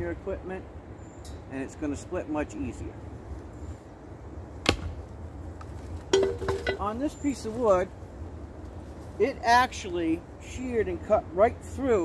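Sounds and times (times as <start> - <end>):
low steady rumble: 0.0 - 9.6
firewood knocking down: 6.1 - 6.9.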